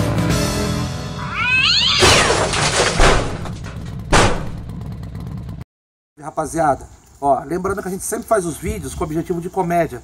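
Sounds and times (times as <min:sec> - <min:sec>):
cat-like meow: 0:01.3 - 0:02.3
thuds: 0:02.0 - 0:04.8.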